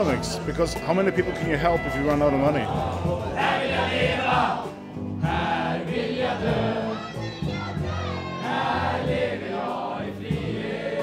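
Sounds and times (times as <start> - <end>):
crowd singing in unison: 1.2 - 11.0.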